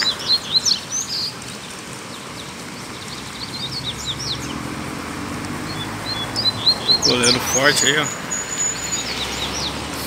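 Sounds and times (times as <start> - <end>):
distant traffic rumble: 0.0 - 10.0
bird singing high whistle: 8.0 - 9.8.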